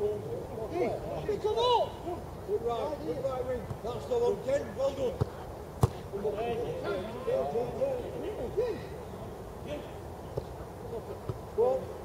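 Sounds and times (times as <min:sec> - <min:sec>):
man shouting loudly: 0:01.3 - 0:02.0.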